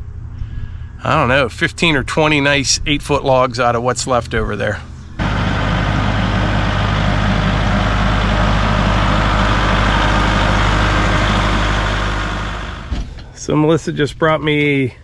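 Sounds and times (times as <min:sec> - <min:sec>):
tractor diesel engine running: 0:05.2 - 0:13.4.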